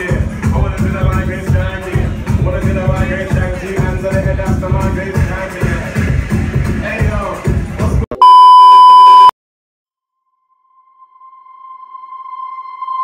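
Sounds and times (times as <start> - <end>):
club music: 0.0 - 8.0
loud high electronic beep: 8.2 - 9.3.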